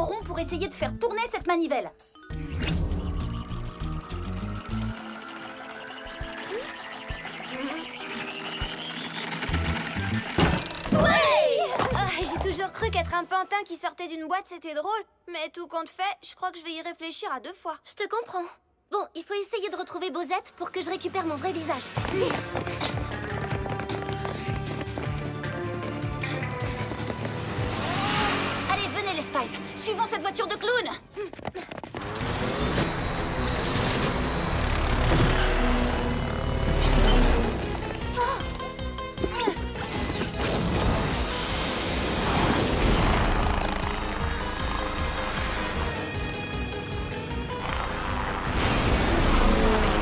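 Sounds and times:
music: 0.0s - 14.0s, 20.7s - 50.0s
rising tone: 2.3s - 11.0s
ratcheting crank clicks: 3.1s - 10.9s.

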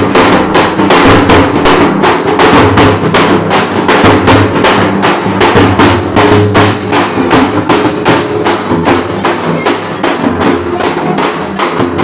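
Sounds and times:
frame drums beaten with sticks: 0.0s - 12.0s.

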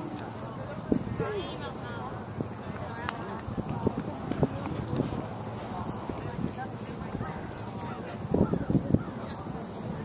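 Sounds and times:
faint distant voices: 0.0s - 10.0s.

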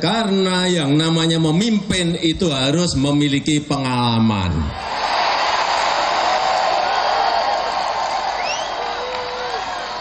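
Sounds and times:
crowd cheering and shouting: 4.7s - 10.0s.

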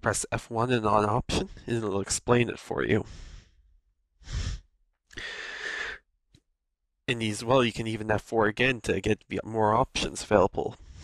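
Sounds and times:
person breathing: 3.0s - 6.1s, 10.8s - 11.0s.

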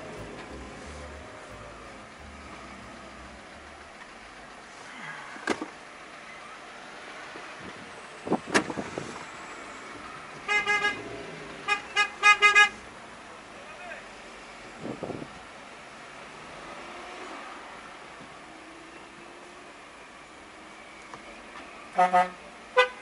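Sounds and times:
car horn tooting: 0.0s - 3.8s, 10.5s - 11.0s, 11.7s - 12.8s, 22.0s - 23.0s
traffic noise: 0.0s - 23.0s.

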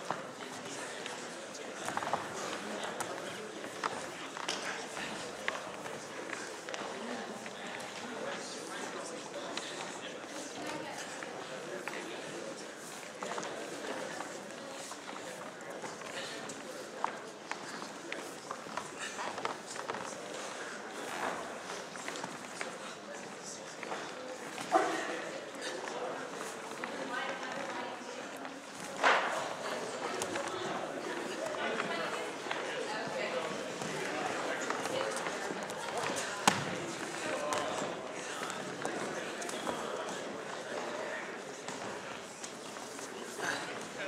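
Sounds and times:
indistinct background voices: 0.0s - 44.0s.

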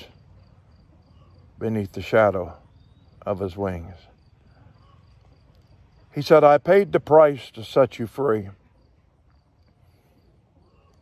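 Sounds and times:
cricket chirping: 0.0s - 11.0s.

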